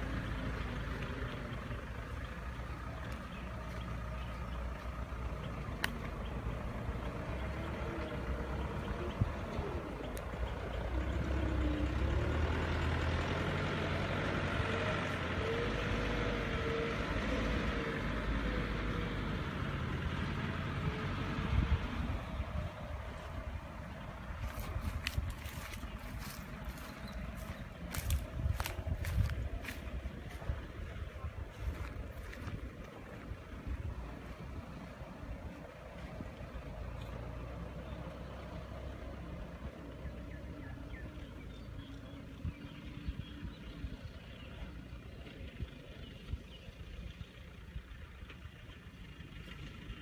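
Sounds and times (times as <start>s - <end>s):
dump truck engine running: 0.0s - 50.0s.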